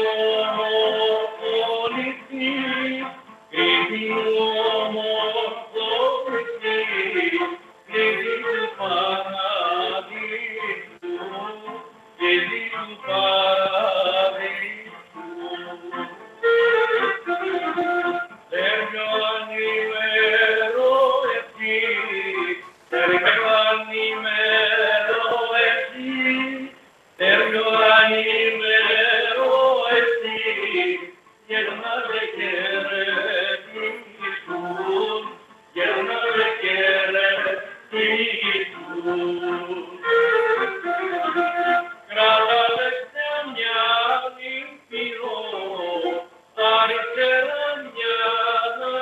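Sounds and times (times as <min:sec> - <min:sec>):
bowed lyra folk melody: 0:00.0 - 0:49.0
man singing: 0:00.0 - 0:49.0
strummed lute: 0:00.0 - 0:49.0.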